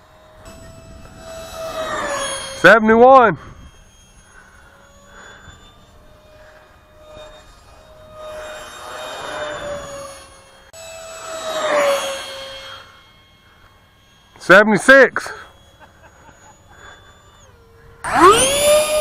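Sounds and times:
model plane fan whining: 0.0s - 19.0s.

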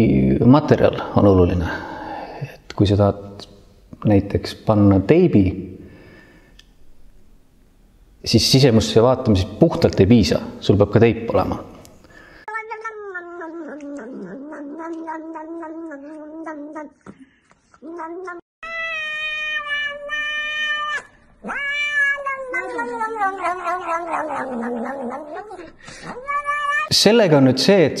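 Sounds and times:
cat meowing: 12.5s - 17.1s, 17.8s - 26.9s.

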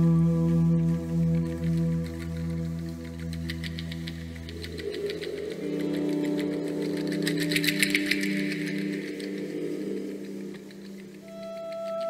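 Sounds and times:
droning ambient tones: 0.0s - 12.0s
fast ticking percussion: 1.2s - 12.0s.

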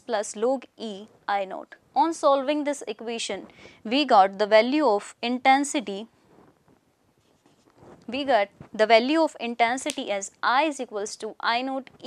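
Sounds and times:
marker pen on whiteboard: 6.3s - 10.2s.

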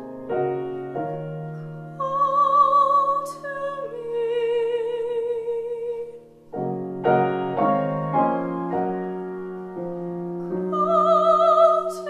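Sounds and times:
piano chords: 0.0s - 12.0s
soprano singing with vibrato: 1.9s - 6.4s, 10.5s - 12.0s.

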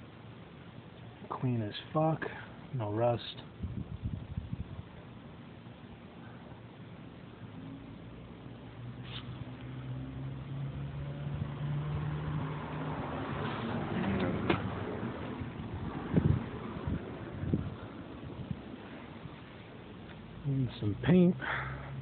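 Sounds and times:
vehicle engine passing by: 8.8s - 18.2s.

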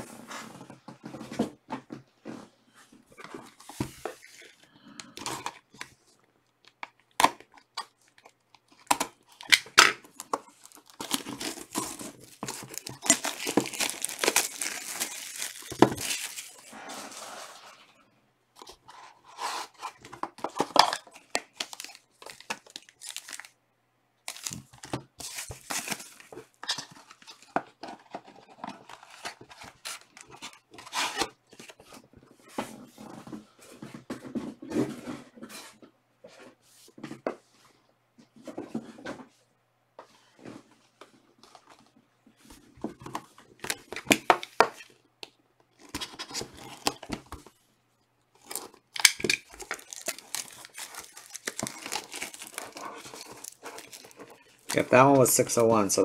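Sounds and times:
plastic wrap crinkling: 8.0s - 17.8s, 19.8s - 23.6s, 24.3s - 27.6s, 48.4s - 55.7s
packaging tearing: 8.8s - 16.7s, 21.4s - 23.5s, 24.3s - 26.3s, 48.4s - 55.1s.

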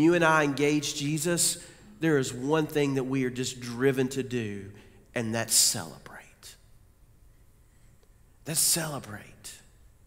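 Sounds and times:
man speaking: 0.0s - 6.7s, 8.4s - 9.7s.

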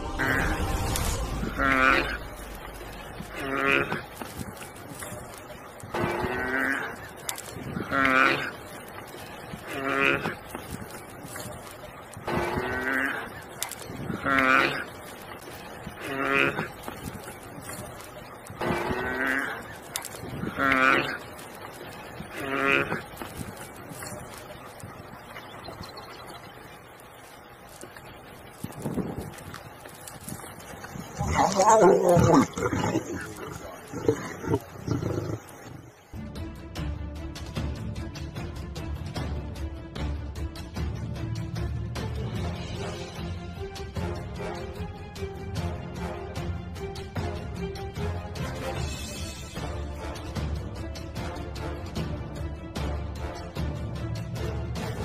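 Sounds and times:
animal drawn-out cry: 0.1s - 26.2s, 28.6s - 36.1s.

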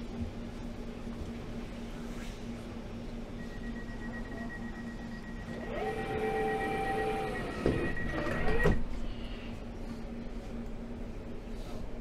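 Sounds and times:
lower warning tone: 3.4s - 8.8s.

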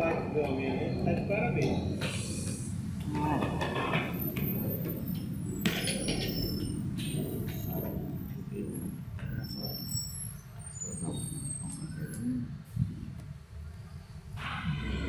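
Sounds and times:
street traffic rumble: 0.0s - 15.0s.

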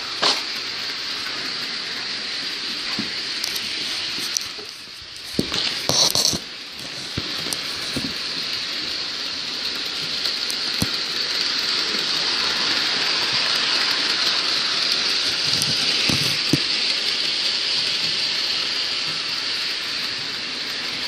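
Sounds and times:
model train motor whirring: 0.0s - 21.0s
wheels clicking over track joints: 0.0s - 21.0s.

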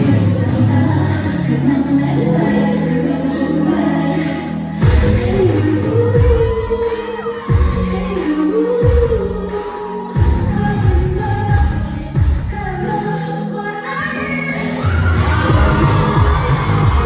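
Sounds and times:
woman singing into a microphone: 0.0s - 17.0s
backing track with heavy bass beat: 4.8s - 12.8s, 15.0s - 17.0s.

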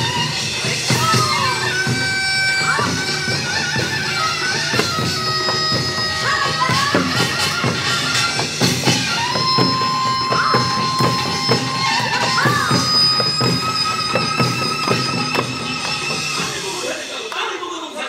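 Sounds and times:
shrill reed melody: 0.0s - 17.7s.

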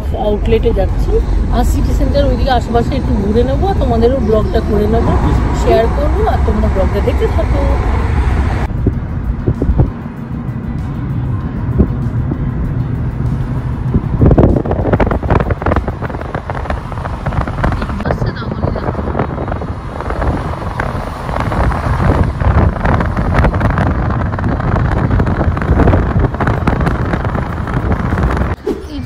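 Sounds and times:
car road noise: 0.0s - 29.0s
wind buffeting microphone: 0.0s - 29.0s.

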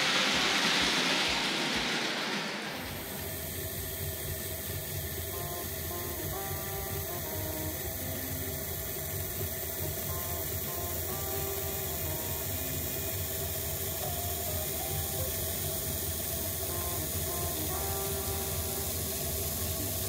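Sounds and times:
model train motor whirring: 0.0s - 20.0s
soft background music: 5.0s - 20.0s.

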